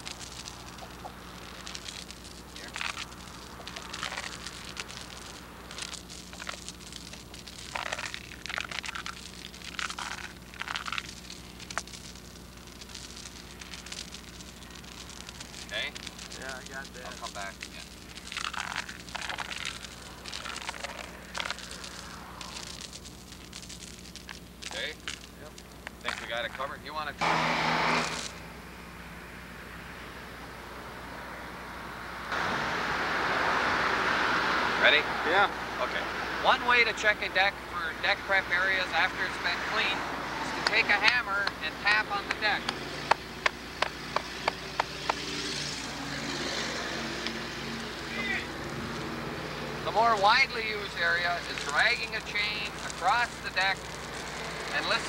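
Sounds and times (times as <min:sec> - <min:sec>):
steady rushing noise: 0:30.6 - 0:55.0
hammer tapping on concrete: 0:42.7 - 0:45.2.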